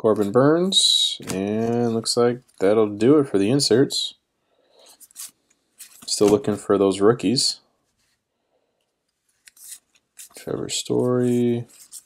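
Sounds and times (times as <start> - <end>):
cards sliding swish: 4.8 - 6.4, 9.3 - 12.0.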